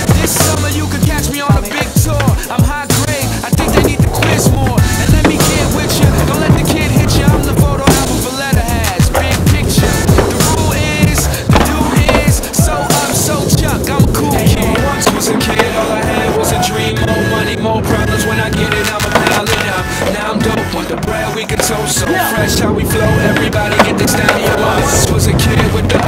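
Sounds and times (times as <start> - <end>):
hip-hop track with rapping: 0.0 - 26.0
skateboard knocking on ramps: 0.0 - 26.0
skateboard wheels rolling: 0.0 - 26.0.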